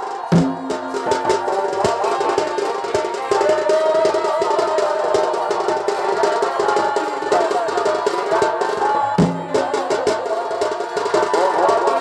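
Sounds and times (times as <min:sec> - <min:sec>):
fast drum strokes: 0:00.0 - 0:12.0.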